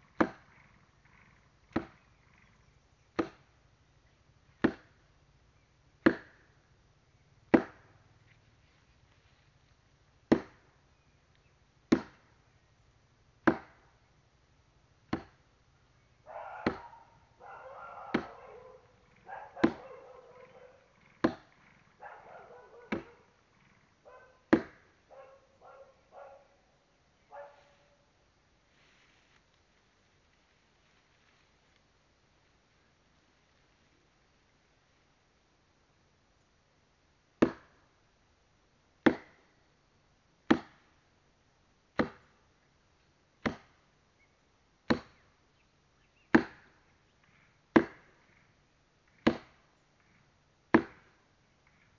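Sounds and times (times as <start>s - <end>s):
firewood being chopped: 0.2s - 0.5s, 1.7s - 2.0s, 3.2s - 3.5s, 4.6s - 5.0s, 6.0s - 6.6s, 7.5s - 8.0s, 10.3s - 10.7s, 11.9s - 12.4s, 13.4s - 13.9s, 15.1s - 15.4s, 16.6s - 17.0s, 18.0s - 18.6s, 19.6s - 20.0s, 21.0s - 21.7s, 22.8s - 23.2s, 24.5s - 24.9s, 37.4s - 37.8s, 39.0s - 39.4s, 40.5s - 40.9s, 42.0s - 42.4s, 43.4s - 43.8s, 44.9s - 45.2s, 46.3s - 46.8s, 47.7s - 48.2s, 49.1s - 49.6s, 50.7s - 51.2s.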